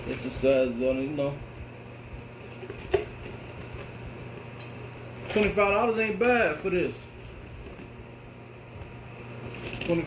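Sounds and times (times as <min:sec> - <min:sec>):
fan humming: 0:00.0 - 0:10.0.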